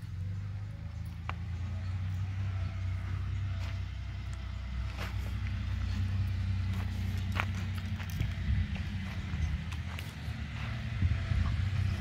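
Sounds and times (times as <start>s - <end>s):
tractor engine droning: 0.0s - 12.0s.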